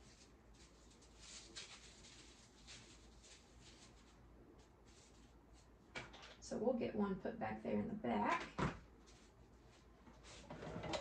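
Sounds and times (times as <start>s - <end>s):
woman speaking: 6.4s - 8.7s.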